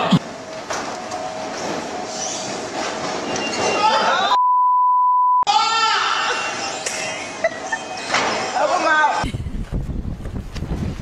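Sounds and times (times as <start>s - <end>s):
censor bleep: 4.3s - 5.5s.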